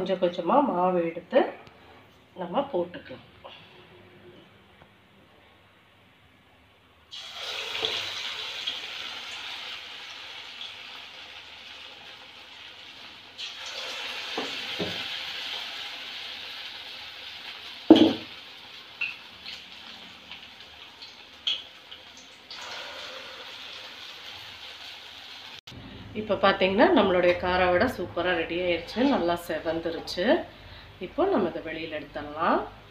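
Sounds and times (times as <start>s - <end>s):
batter sizzling in hot oil: 7.1s - 25.7s.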